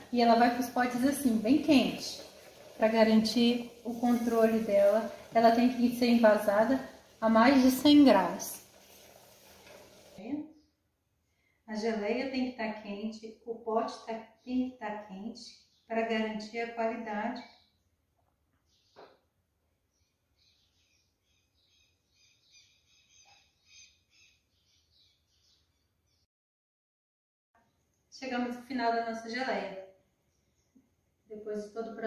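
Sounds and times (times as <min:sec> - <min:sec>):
faint birds chirping: 0:14.0 - 0:26.3, 0:27.6 - 0:28.7, 0:29.8 - 0:32.0.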